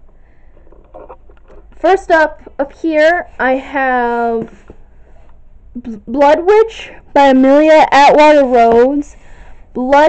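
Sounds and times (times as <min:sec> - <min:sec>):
faint soft clicks and rustles: 0:00.0 - 0:03.4
woman speaking: 0:01.8 - 0:04.6, 0:05.8 - 0:09.2, 0:09.8 - 0:10.0.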